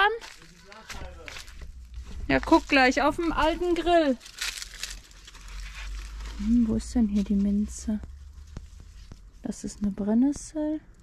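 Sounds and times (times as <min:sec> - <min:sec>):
herb leaves rustling: 0:00.0 - 0:09.9.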